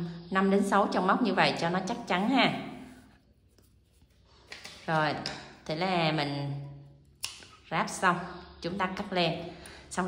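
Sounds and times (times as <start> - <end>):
woman speaking: 0.0 - 3.0, 4.8 - 6.8, 7.6 - 10.0.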